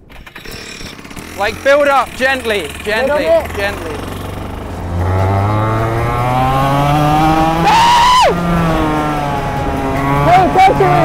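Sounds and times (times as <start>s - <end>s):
go-kart engine accelerating: 0.0s - 11.0s
voices: 0.0s - 11.0s.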